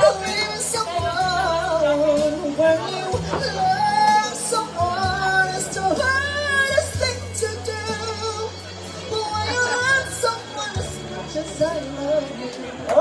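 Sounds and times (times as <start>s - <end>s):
amplified accompaniment with low bass: 0.0s - 13.0s
woman singing with vibrato: 0.0s - 13.0s.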